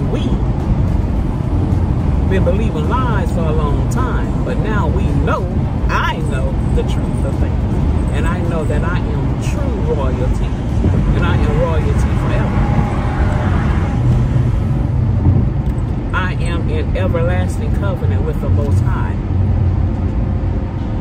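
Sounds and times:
road and engine rumble in car: 0:00.0 - 0:21.0.

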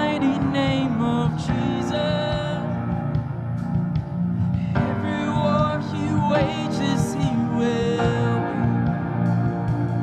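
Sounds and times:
worship band music with guitar: 0:00.0 - 0:10.0.

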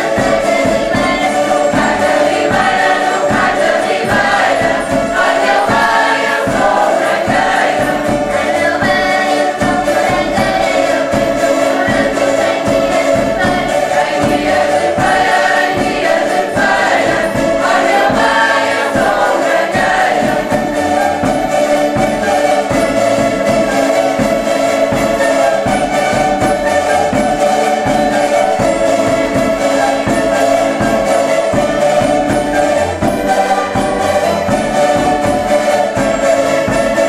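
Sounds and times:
group of voices singing: 0:00.0 - 0:37.0
strummed small guitars: 0:00.0 - 0:37.0.

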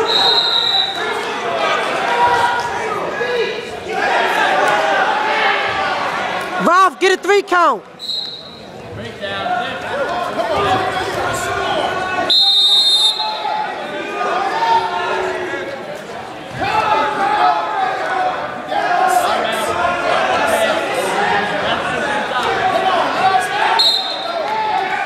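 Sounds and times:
shrill whistle or buzzer: 0:00.0 - 0:01.0
spectators chattering in gym: 0:00.0 - 0:25.0.

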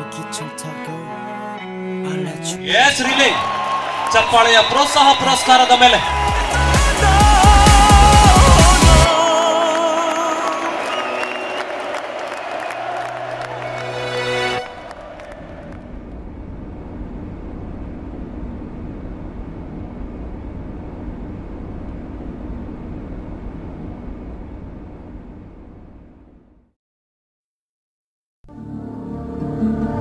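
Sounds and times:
music: 0:00.0 - 0:03.3, 0:05.7 - 0:15.1, 0:28.4 - 0:30.0
low rushing noise: 0:14.6 - 0:26.5.

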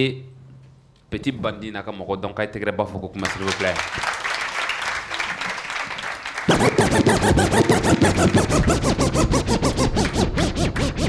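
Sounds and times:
audience applause: 0:03.2 - 0:08.7
loud music with fast beat: 0:06.5 - 0:11.0.

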